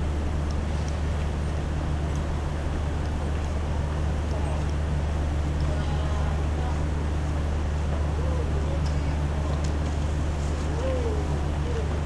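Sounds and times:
low city hum: 0:00.0 - 0:12.0
faint distant voices: 0:05.6 - 0:12.0.

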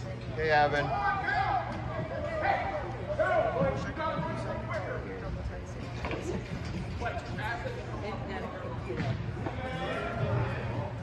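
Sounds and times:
low arena hum: 0:00.0 - 0:11.0.

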